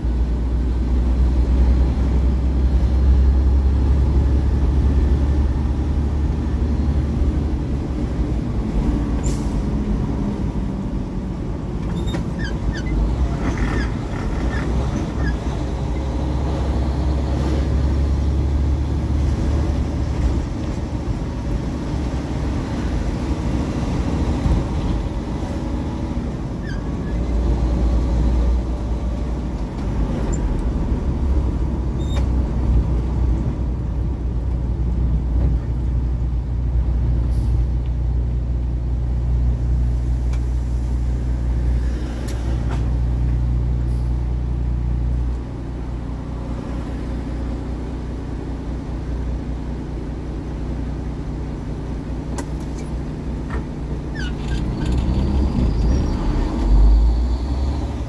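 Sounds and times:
truck engine droning: 0:00.0 - 0:58.0.

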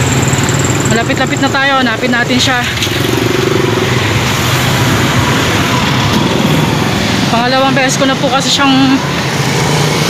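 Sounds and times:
street traffic: 0:00.0 - 0:10.0
vehicle engine passing close: 0:00.0 - 0:10.0.

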